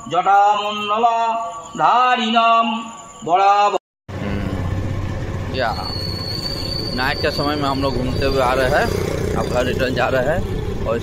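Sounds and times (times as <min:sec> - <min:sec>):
motorcycle engine running: 0:04.1 - 0:11.0
wind and road noise: 0:04.1 - 0:11.0.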